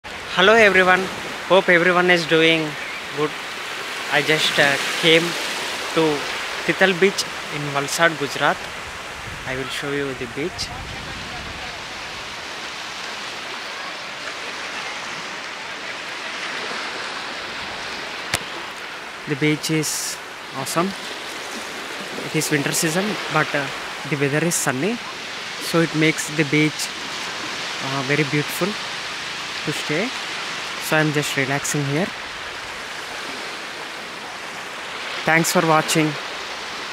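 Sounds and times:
small waves washing ashore: 0.1 - 36.9.

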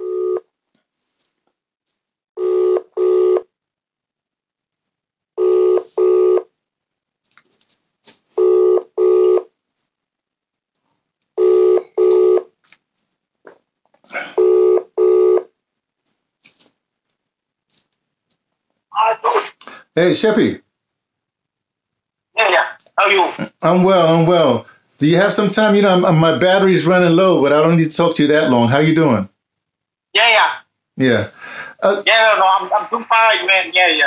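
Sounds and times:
telephone ringback tone: 0.0 - 0.5, 2.4 - 3.5, 5.4 - 6.5, 8.4 - 9.5, 11.4 - 12.5, 14.4 - 15.5.

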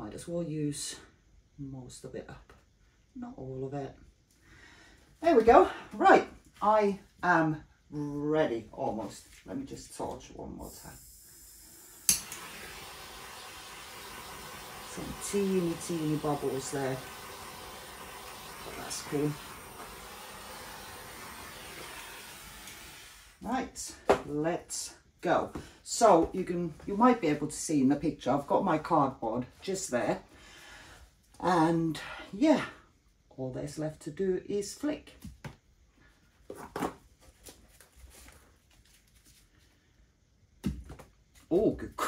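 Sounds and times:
torch flame hissing: 10.7 - 23.5.

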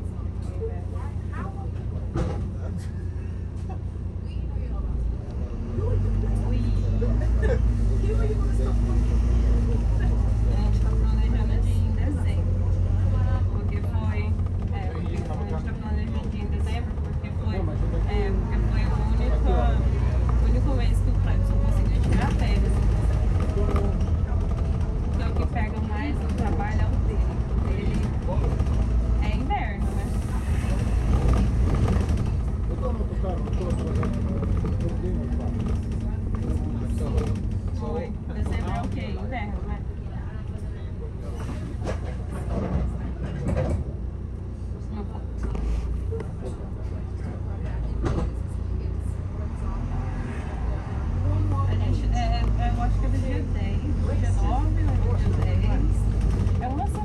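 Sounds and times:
bus engine rumble: 0.0 - 57.0
passengers talking: 0.0 - 57.0.

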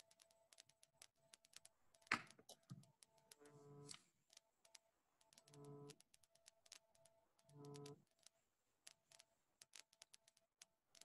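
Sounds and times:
faint scattered clicks: 0.0 - 11.0
faint steady hum: 0.0 - 11.0.

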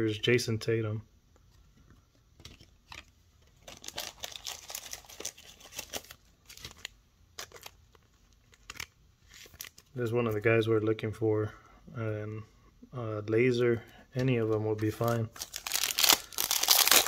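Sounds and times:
cards being handled: 1.4 - 9.9, 14.2 - 17.0
foil wrapper crinkling and tearing: 3.6 - 9.9, 14.9 - 17.0.

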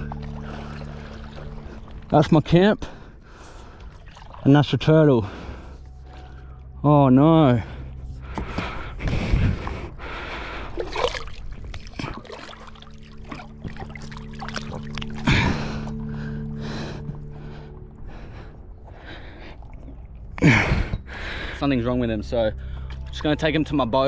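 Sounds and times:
water splashing around a board: 10.7 - 15.7.

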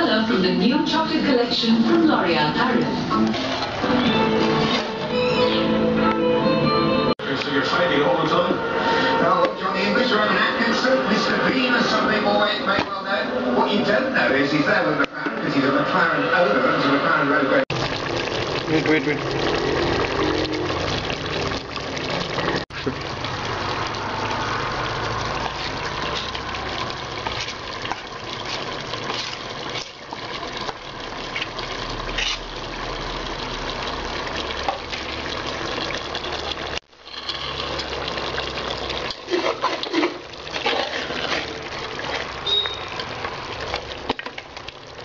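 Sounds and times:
metal spoon scraping a pot: 27.3 - 30.0, 32.1 - 32.5, 37.0 - 38.0, 39.0 - 43.2.

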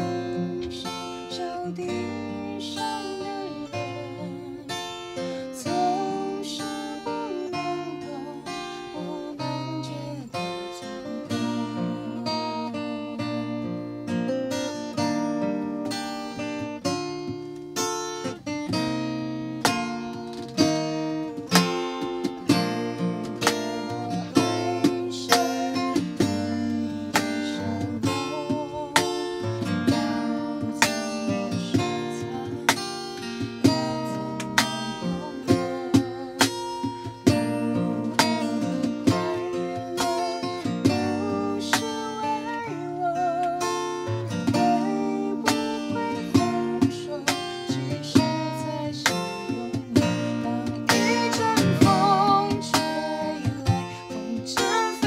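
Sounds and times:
man singing: 0.0 - 4.8, 23.2 - 36.9, 38.0 - 55.0
acoustic guitar strumming: 0.0 - 55.0.

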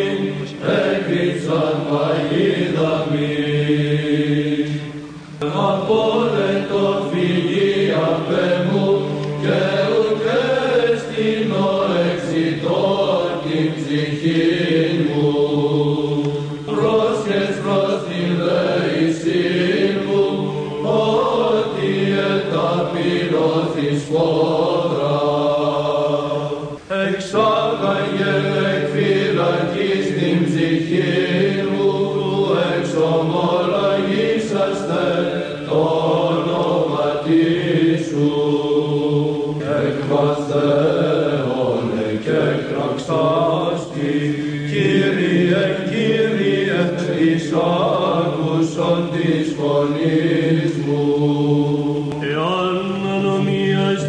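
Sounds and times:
held vocal drone: 0.0 - 54.0
men chanting: 5.4 - 54.0.

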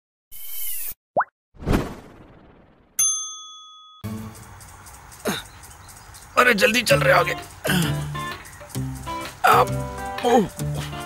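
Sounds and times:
quick rising pop: 1.2 - 3.0
bright chime ringing: 3.0 - 4.1.

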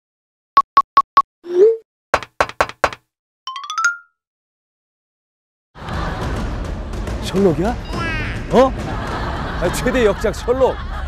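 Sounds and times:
knocks: 2.2 - 3.0.

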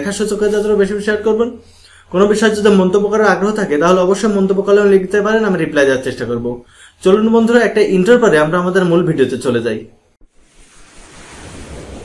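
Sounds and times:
whoosh sound effect: 10.3 - 12.0.

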